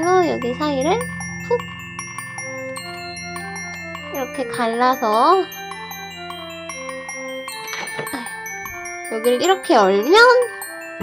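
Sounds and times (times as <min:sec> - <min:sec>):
bell-like chiming music: 0:00.0 - 0:11.0.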